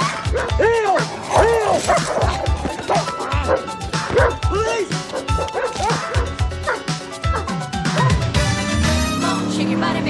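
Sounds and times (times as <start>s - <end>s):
dogs barking: 0.0s - 8.5s
film score with driving beat: 0.0s - 9.2s.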